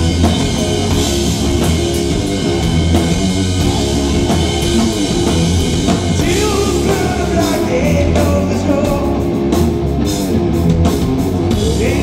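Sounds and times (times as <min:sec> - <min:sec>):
bass guitar: 0:00.0 - 0:12.0
distorted electric guitar: 0:00.0 - 0:12.0
drums: 0:00.0 - 0:12.0.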